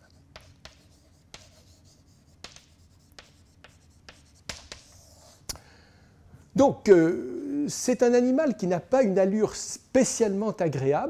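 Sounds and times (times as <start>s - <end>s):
chalk tapping and scraping: 0.0s - 5.5s.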